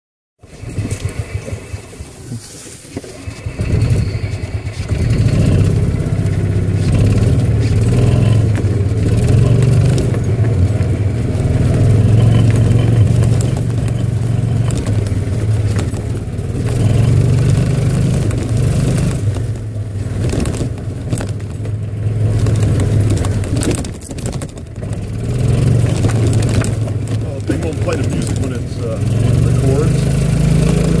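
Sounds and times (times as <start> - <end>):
golf cart motor humming: 0.4 - 31.0
knocks and rattles: 2.9 - 31.0.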